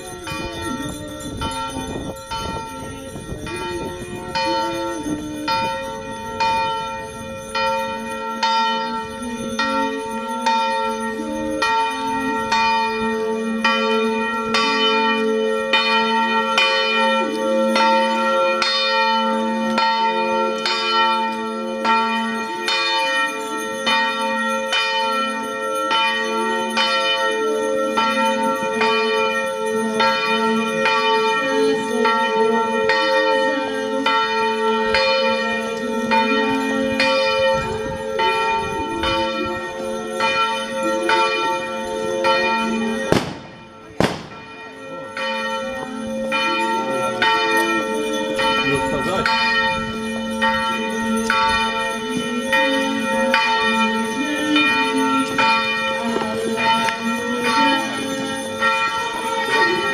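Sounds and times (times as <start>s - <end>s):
church bells ringing: 0.0s - 59.9s.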